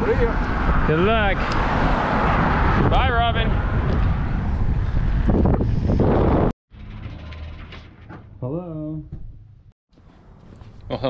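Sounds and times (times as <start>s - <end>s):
wind buffeting microphone: 0.0s - 6.6s.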